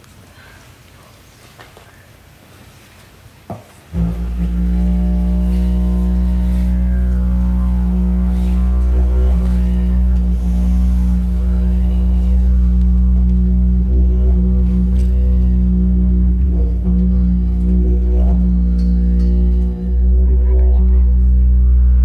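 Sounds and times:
didgeridoo drone: 3.9s - 22.0s.

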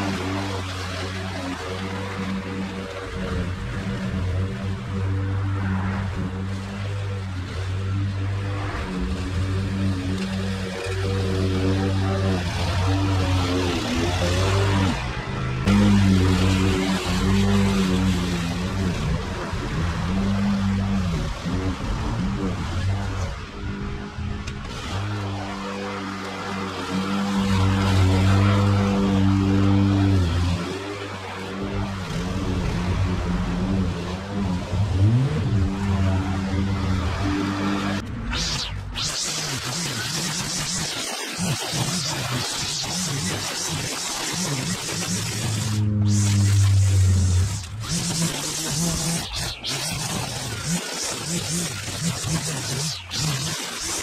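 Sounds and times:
lawn mower engine cutting grass: 0.0s - 54.0s.

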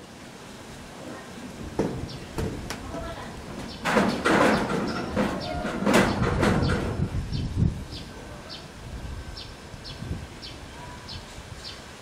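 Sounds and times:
people's voices: 1.0s - 3.7s
bird chirping: 3.6s - 8.7s, 9.3s - 11.8s.

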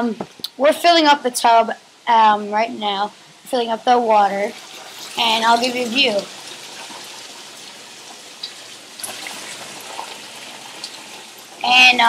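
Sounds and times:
tap water filling plastic bucket: 4.6s - 11.6s.

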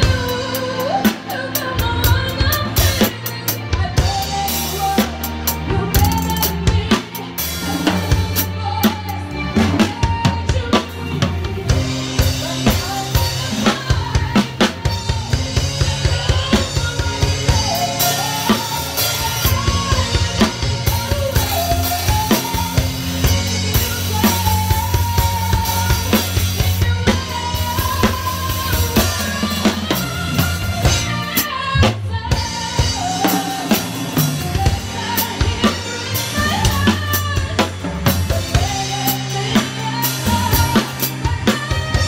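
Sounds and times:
drum kit playing: 0.0s - 42.0s
steady bass line: 1.7s - 42.0s.

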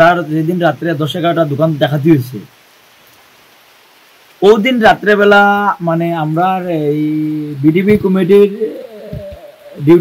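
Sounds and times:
man speaking with hesitation: 4.4s - 10.0s.

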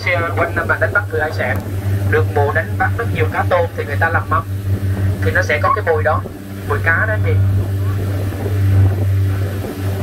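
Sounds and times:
speedboat engine droning: 0.0s - 10.0s.

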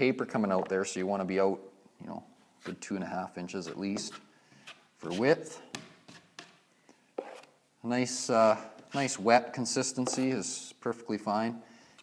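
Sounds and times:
man speaking: 0.0s - 4.3s, 5.0s - 5.8s, 7.8s - 11.6s
taping knife scraping: 7.2s - 7.6s.

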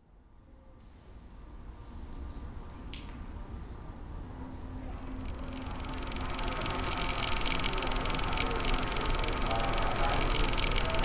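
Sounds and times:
low hum: 4.8s - 11.0s
crackling clicks: 5.0s - 11.0s
static hiss: 5.1s - 11.0s.

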